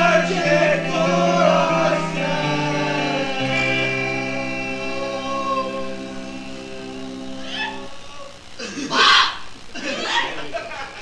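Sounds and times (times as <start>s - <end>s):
band holding final chord: 0.0s - 8.2s.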